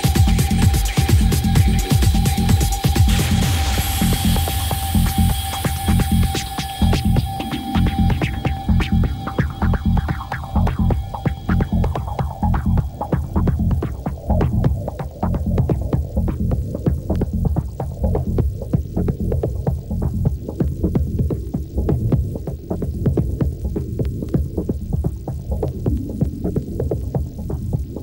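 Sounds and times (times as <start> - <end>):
high held synth tone: 0.0 - 15.5
hi-hat ticks: 0.0 - 28.0
pulsing bass line: 0.0 - 28.0.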